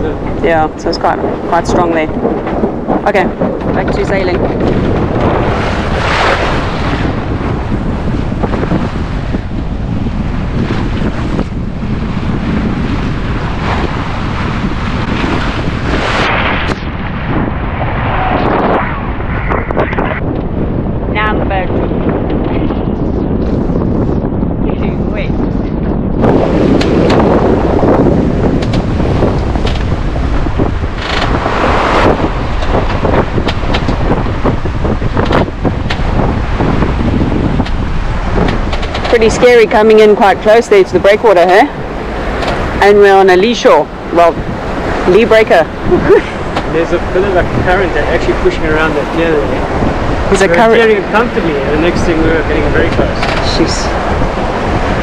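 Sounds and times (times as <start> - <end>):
rush of sea: 0.0 - 55.0
wind buffeting microphone: 0.0 - 55.0.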